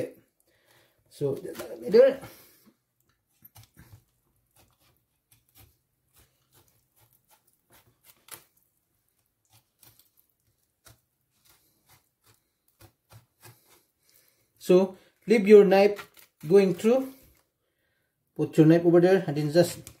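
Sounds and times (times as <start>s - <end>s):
knife ticking through fish flesh: 3.4s - 8.6s, 9.4s - 14.2s.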